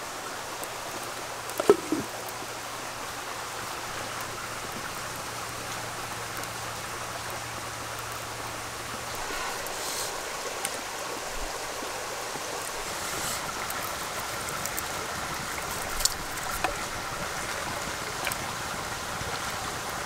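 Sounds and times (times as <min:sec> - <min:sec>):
shallow stream rushing: 0:00.0 - 0:20.0.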